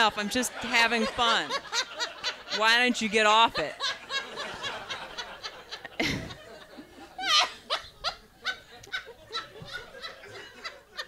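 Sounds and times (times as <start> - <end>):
high-pitched laughter: 7.1 - 11.0.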